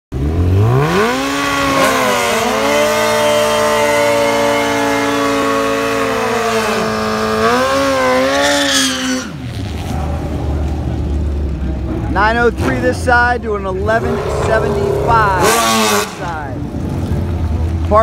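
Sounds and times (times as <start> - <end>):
motorcycle engine revving: 0.1 - 18.0.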